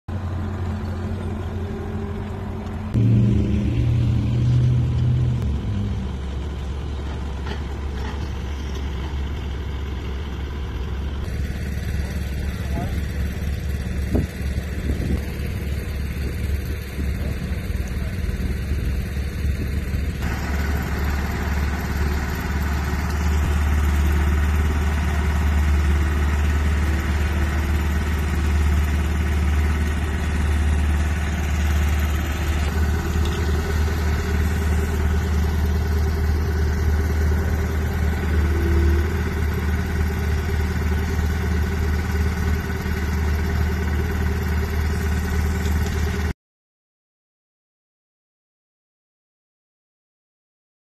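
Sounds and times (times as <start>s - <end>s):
diesel engine running: 0.1s - 46.3s.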